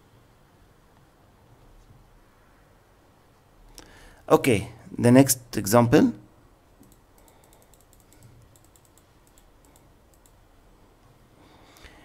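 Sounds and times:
low room hiss: 0:00.0 - 0:12.0
computer keyboard typing: 0:06.8 - 0:10.4.

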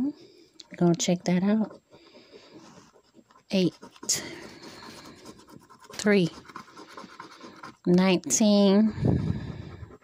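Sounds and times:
coin scraping scratch card: 0:03.3 - 0:08.2.

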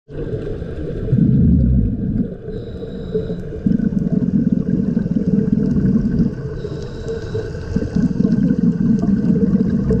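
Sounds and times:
bubbling of exhaled air underwater: 0:00.1 - 0:10.0
thin hiss of inhale: 0:02.5 - 0:03.6, 0:06.6 - 0:08.0.

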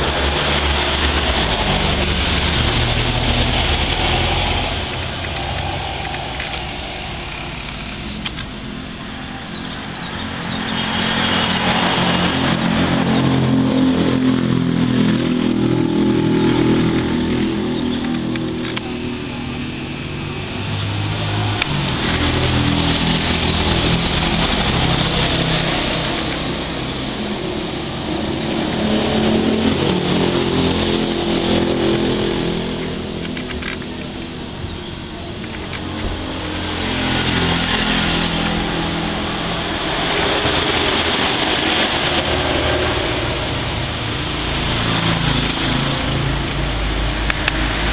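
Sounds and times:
passing motor vehicle engines: 0:00.0 - 0:47.9.

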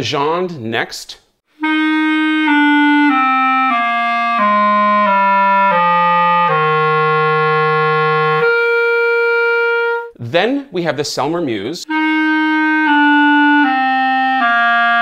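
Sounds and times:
clarinet playing descending scale: 0:01.6 - 0:10.2, 0:11.9 - 0:15.0.

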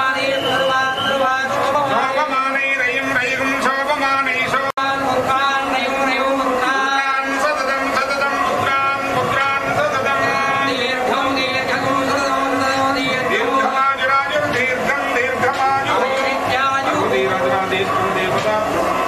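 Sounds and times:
melodic devotional chanting: 0:00.0 - 0:19.0.

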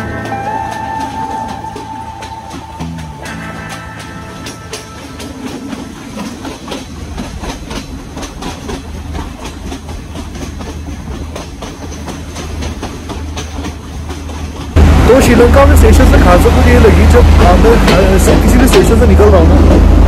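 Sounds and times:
wheel clicks over rails: 0:00.0 - 0:19.9
train rumble: 0:00.0 - 0:20.0.

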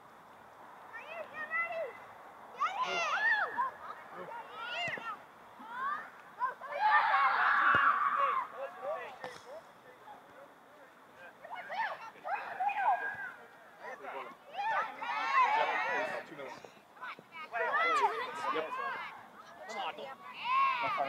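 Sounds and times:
voices shouting and calling: 0:00.8 - 0:21.0.

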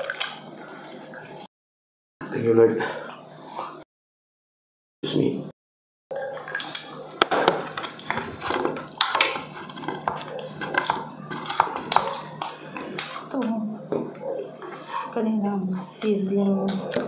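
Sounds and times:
spoon scraping plates: 0:06.2 - 0:15.2.

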